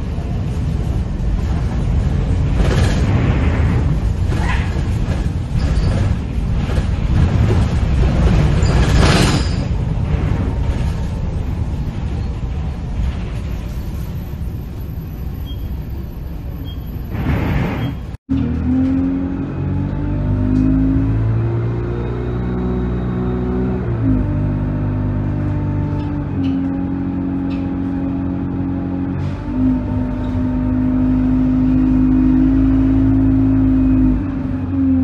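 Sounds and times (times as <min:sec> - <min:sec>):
bus engine and tyre noise: 0:00.0 - 0:35.0.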